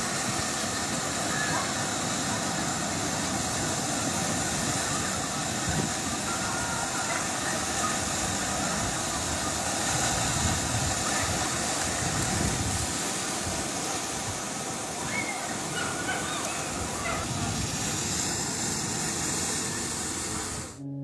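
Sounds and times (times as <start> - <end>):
floodwater rushing and churning: 0.0 - 20.8.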